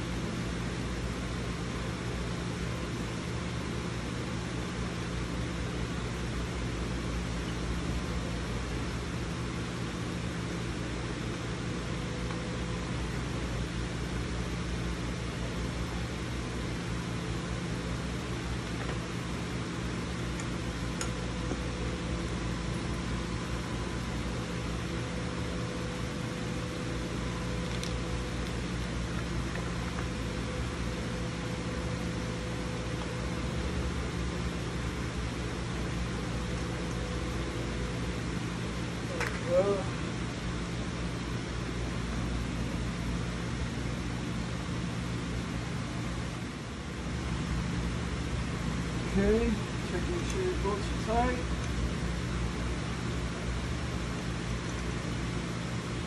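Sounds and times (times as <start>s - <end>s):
fan motor humming: 0.0s - 56.0s.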